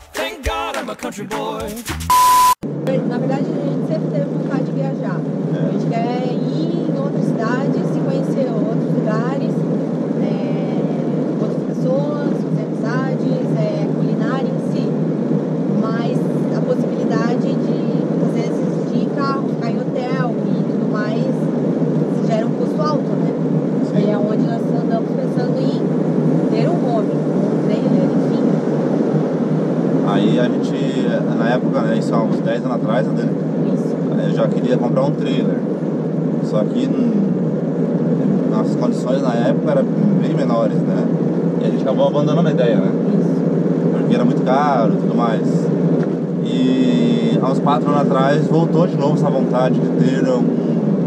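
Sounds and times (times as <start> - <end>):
people talking: 0.0 - 2.1, 2.9 - 9.6, 10.2 - 15.0, 15.8 - 21.5, 22.1 - 25.9, 26.5 - 28.5, 30.0 - 35.6, 36.4 - 37.4, 38.2 - 45.7, 46.4 - 51.0
van engine and road noise: 2.0 - 51.0.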